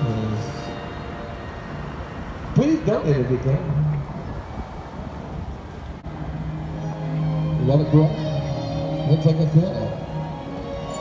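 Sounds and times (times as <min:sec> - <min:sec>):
rumble of passing cars: 0:00.0 - 0:11.0.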